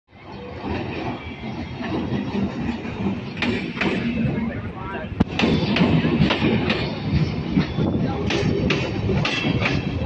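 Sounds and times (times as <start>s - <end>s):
electric train passing: 0.1s - 10.0s.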